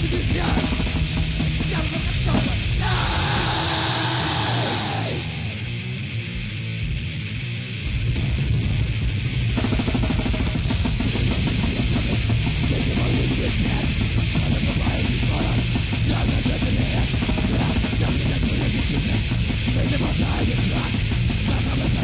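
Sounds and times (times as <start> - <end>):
fast drumming with cymbals: 0.0 - 5.2, 7.8 - 22.0
death metal band: 0.0 - 22.0.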